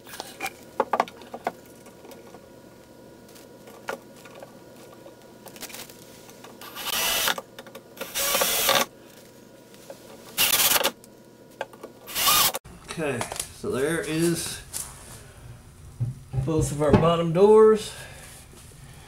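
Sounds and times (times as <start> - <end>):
drill driving screws: 6.6 - 7.4, 8.0 - 8.9, 10.4 - 11.0, 12.1 - 12.6.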